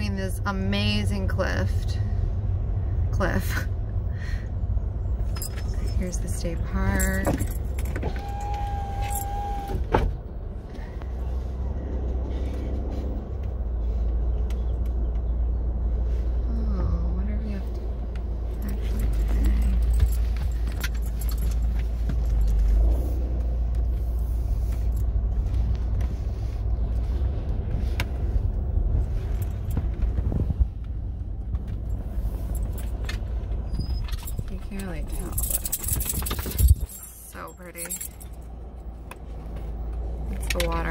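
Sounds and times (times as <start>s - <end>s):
car engine and tyres rumbling: 0.0s - 40.9s.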